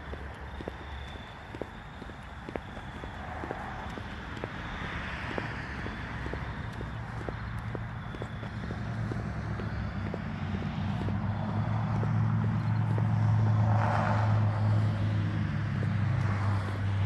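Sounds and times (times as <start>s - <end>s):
traffic engine hum: 0.0s - 17.0s
vehicle passing: 0.0s - 17.0s.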